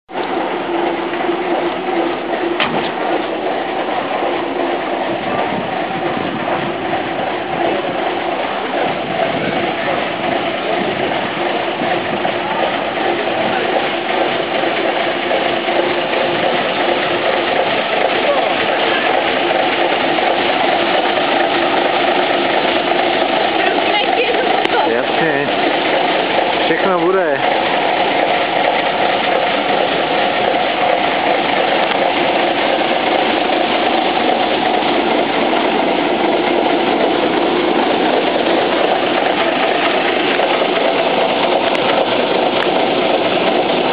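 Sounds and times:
diesel truck engine running: 0:00.1 - 0:43.9.

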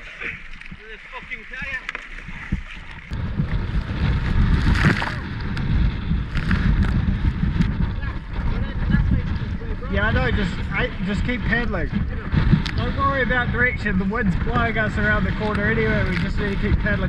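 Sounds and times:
water slapping and splashing: 0:00.0 - 0:17.0
wind buffeting microphone: 0:00.0 - 0:17.0.

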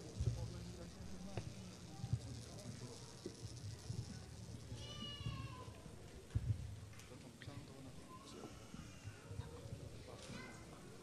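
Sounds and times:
low murmur of crowd: 0:00.0 - 0:11.0.

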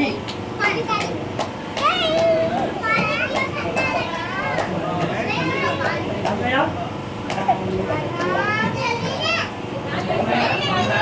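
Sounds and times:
children chattering: 0:01.8 - 0:11.0.

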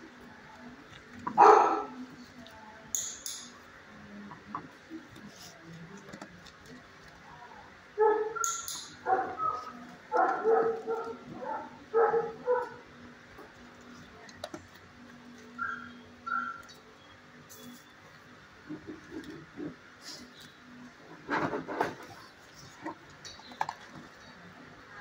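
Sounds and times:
dog barking: 0:01.4 - 0:02.0, 0:08.0 - 0:12.8.

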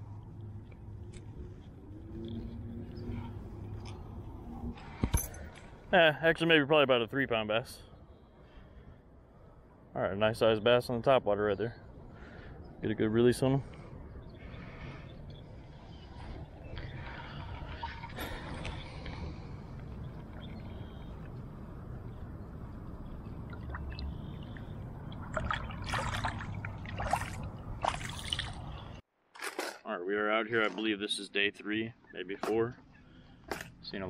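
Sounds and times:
water sloshing and trickling: 0:15.8 - 0:21.4, 0:22.8 - 0:29.7
fish splashing: 0:23.5 - 0:28.7.

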